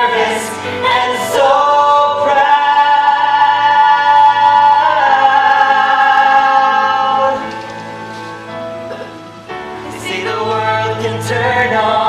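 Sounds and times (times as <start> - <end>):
man and woman singing duet: 0.0 - 8.0, 9.8 - 12.0
musical accompaniment: 0.0 - 12.0.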